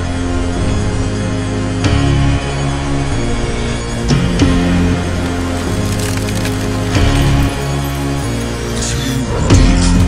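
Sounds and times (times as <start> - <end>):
dramatic film score: 0.0 - 10.0
ice cracking and splintering: 4.4 - 8.8.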